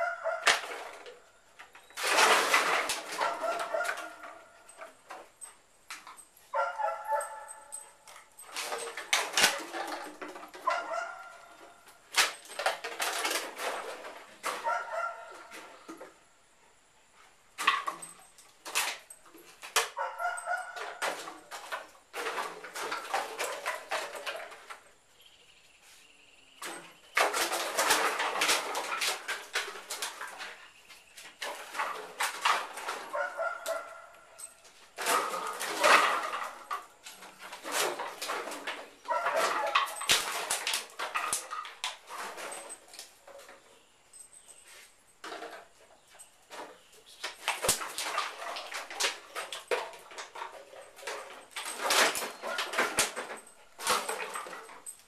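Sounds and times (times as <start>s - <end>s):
plastic bottles clattering on concrete: 0.0s - 16.2s, 17.6s - 25.0s, 26.6s - 55.0s.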